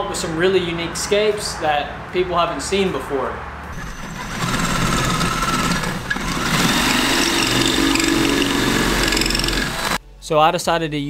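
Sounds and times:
cordless drill boring into rock: 0:03.7 - 0:10.0.

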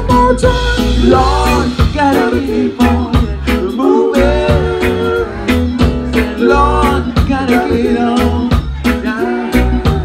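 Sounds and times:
bass line: 0:00.0 - 0:10.0
guitar: 0:00.0 - 0:10.0
vocal group singing harmony: 0:00.0 - 0:10.0.

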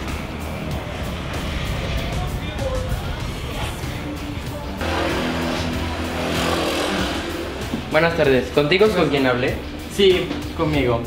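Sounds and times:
car engine running: 0:00.0 - 0:08.6
background music: 0:00.0 - 0:11.0.

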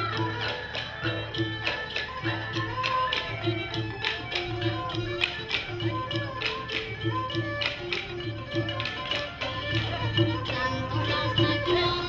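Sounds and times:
folk ensemble music: 0:00.0 - 0:12.0
hand drums: 0:00.0 - 0:12.0.

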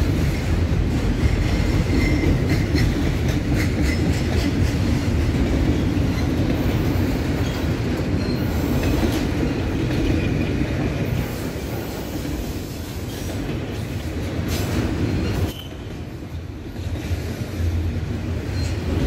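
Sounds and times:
wheels clicking over rail joints: 0:00.0 - 0:16.0
train wheels rumbling on rail: 0:00.0 - 0:19.0
faint thin wheel squeal: 0:15.2 - 0:15.9.

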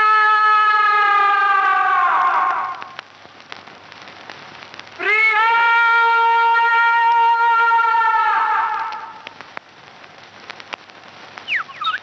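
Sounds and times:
faint crackling: 0:02.2 - 0:05.1, 0:08.6 - 0:12.0.

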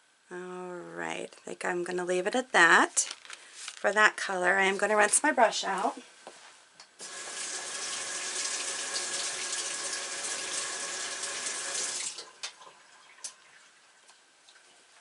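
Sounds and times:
water running: 0:07.0 - 0:15.0.

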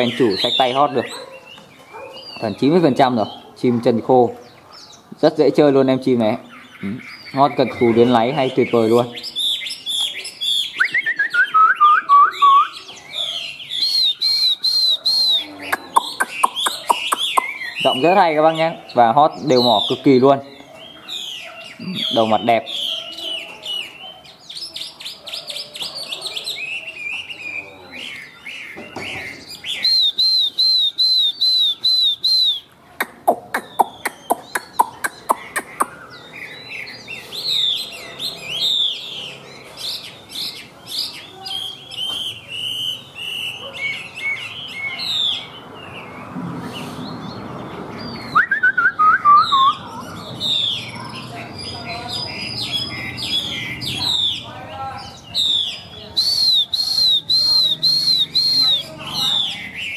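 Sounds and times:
bird singing varied song: 0:00.0 - 0:59.9.

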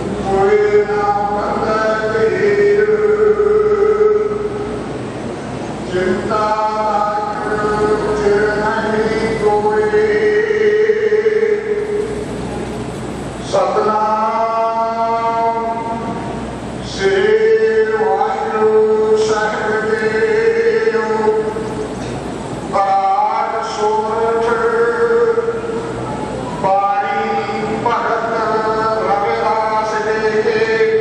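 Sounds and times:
devotional chanting in held notes: 0:00.0 - 0:04.8, 0:05.8 - 0:12.2, 0:13.4 - 0:22.0, 0:22.7 - 0:31.0
person singing a long held note: 0:00.2 - 0:04.8.

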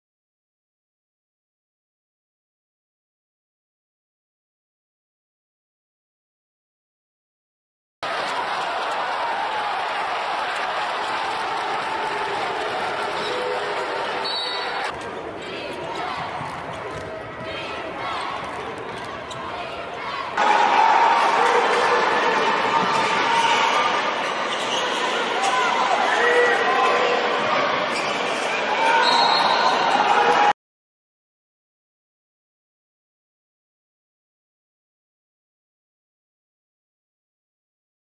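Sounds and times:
crowd noise and voices: 0:08.0 - 0:30.6.

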